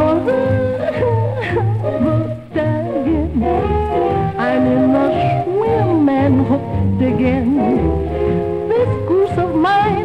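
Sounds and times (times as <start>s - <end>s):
person singing: 0.0s - 8.0s
jazz band with horns: 0.0s - 10.0s.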